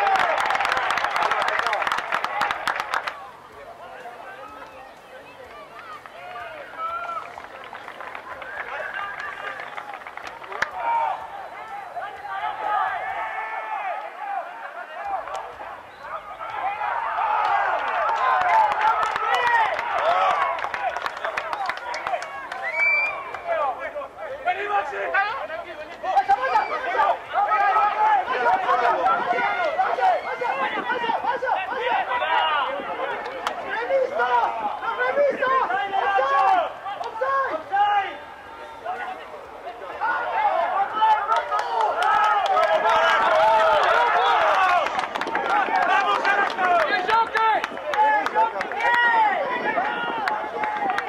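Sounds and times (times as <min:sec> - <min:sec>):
voices calling out: 0:00.0 - 0:51.0.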